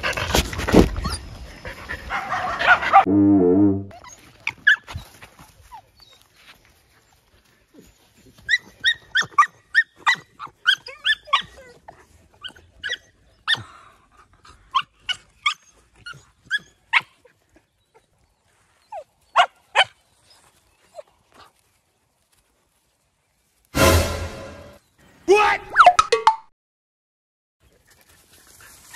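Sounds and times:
dogs barking and yipping: 0:00.9 - 0:03.1, 0:08.3 - 0:13.8, 0:14.5 - 0:21.1.

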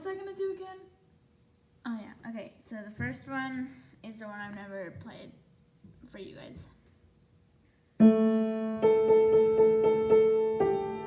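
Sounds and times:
piano playing: 0:08.0 - 0:11.0.

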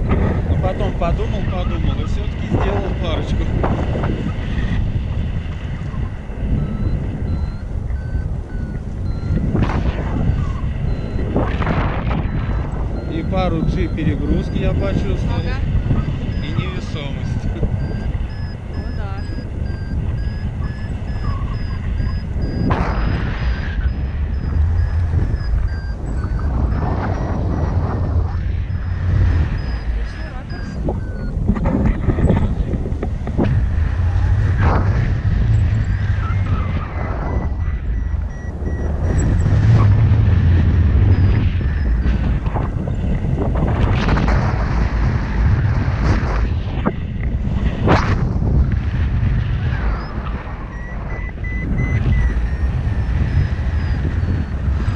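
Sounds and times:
variometer beeping: 0:00.0 - 0:54.9
wind buffeting microphone: 0:00.0 - 0:54.9.

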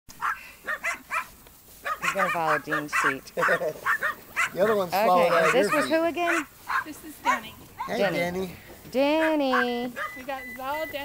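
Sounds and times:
puppy yapping: 0:00.2 - 0:08.2, 0:09.1 - 0:10.4.

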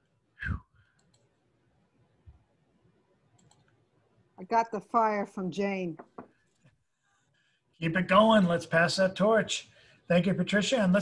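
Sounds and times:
faint clicks: 0:00.8 - 0:01.4, 0:03.3 - 0:03.9.

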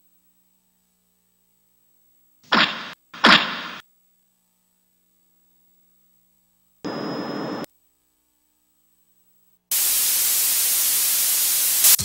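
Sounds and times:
television static hiss: 0:02.5 - 0:03.8, 0:06.9 - 0:07.7, 0:09.7 - 0:12.0
noise burst with high whistle: 0:06.9 - 0:07.7.

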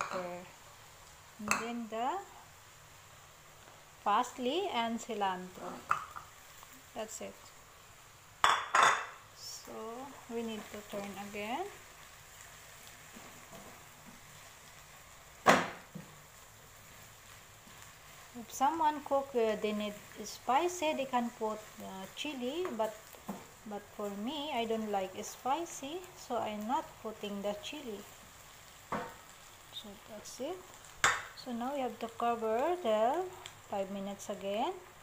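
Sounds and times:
shrimp sizzling in a wok: 0:00.0 - 0:35.0
stirring in a frying pan: 0:00.0 - 0:35.0.

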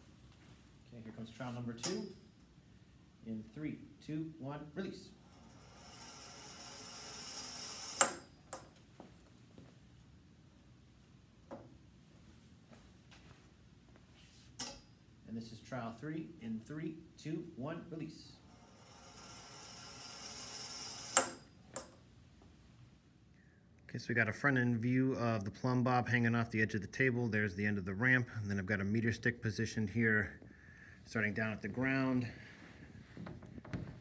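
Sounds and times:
ball rolling down metal ramp: 0:05.3 - 0:08.7, 0:18.5 - 0:21.9.

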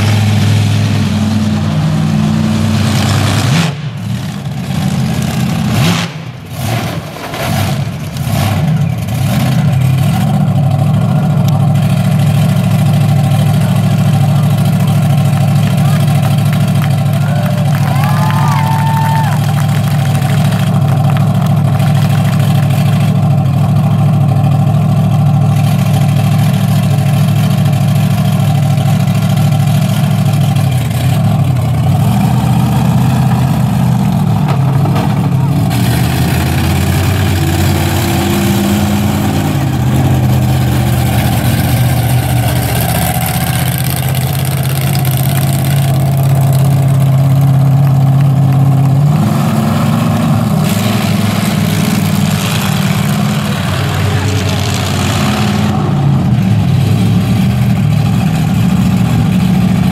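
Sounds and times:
monster truck engine idling: 0:00.0 - 0:59.9.

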